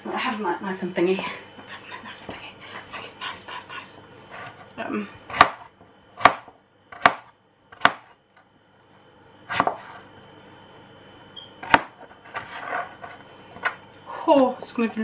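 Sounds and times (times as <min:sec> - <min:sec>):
knife chopping on cutting board: 0:05.3 - 0:08.1, 0:09.5 - 0:10.0, 0:11.6 - 0:13.8.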